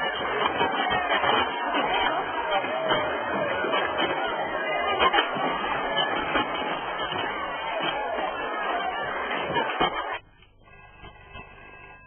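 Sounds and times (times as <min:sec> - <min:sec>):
several voices talking over each other: 0:00.0 - 0:10.2.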